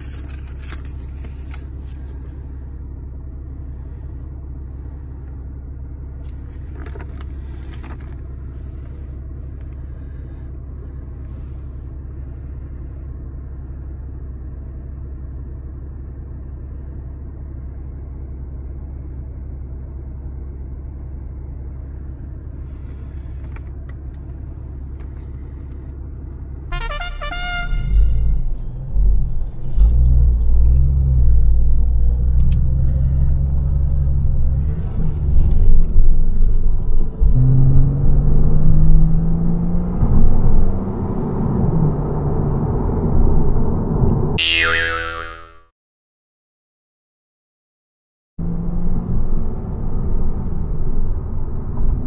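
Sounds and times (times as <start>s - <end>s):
cardboard box rustling: 0.0s - 2.0s
car engine idling: 0.0s - 37.2s.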